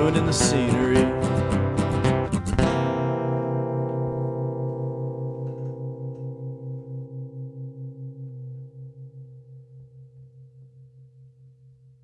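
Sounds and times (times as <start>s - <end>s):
guitar strumming: 0.0s - 11.0s.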